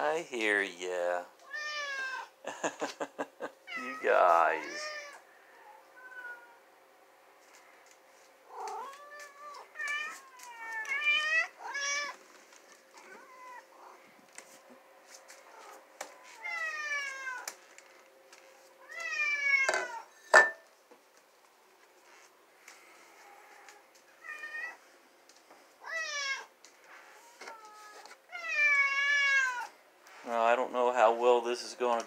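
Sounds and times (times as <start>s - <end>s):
faint steady hum: 0.0s - 32.0s
cats meowing: 1.4s - 2.4s, 3.6s - 6.7s, 8.4s - 14.1s, 15.4s - 17.7s, 18.7s - 20.2s, 22.8s - 24.9s, 25.8s - 29.8s.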